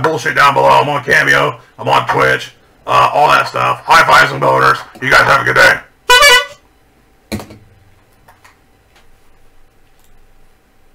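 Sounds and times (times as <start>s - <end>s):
bulb horn honking: 6.1s - 6.7s.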